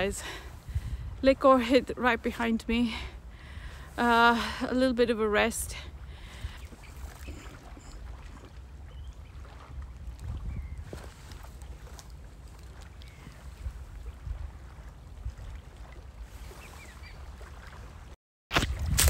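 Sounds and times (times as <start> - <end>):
wind buffeting microphone: 0.0 - 17.5, 18.6 - 19.0.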